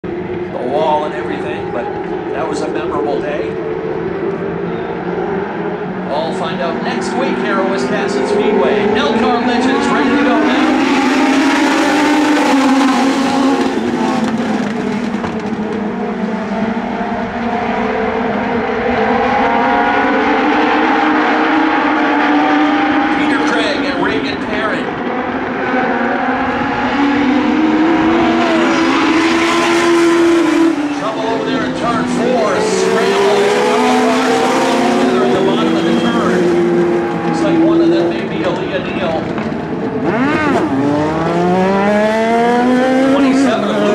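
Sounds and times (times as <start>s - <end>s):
race car engines: 0.0s - 43.9s.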